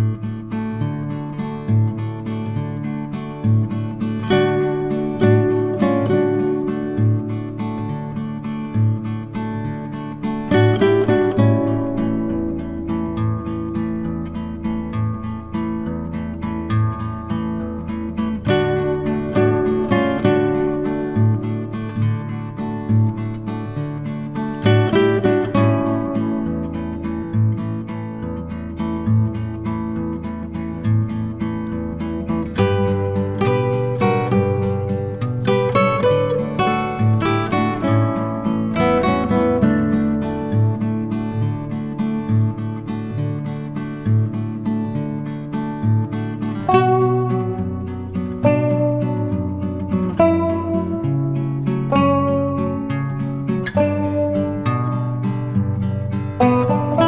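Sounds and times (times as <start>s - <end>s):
acoustic guitar music: 0.0s - 57.0s.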